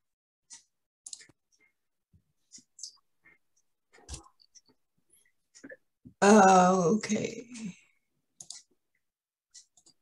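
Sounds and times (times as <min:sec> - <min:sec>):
mouse and keyboard clicks: 0:00.5 - 0:01.8, 0:02.5 - 0:04.8, 0:08.4 - 0:08.7, 0:09.5 - 0:10.0.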